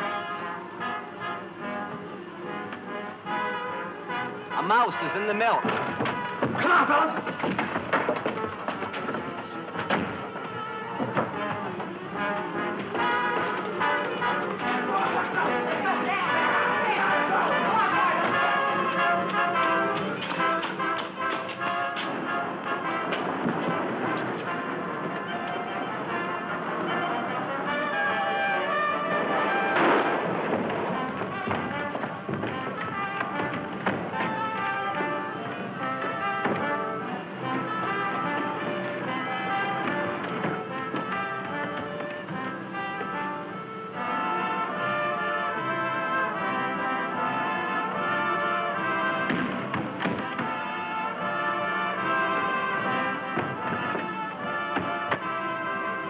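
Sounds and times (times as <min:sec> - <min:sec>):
orchestral music with brass: 0:00.0 - 0:56.0.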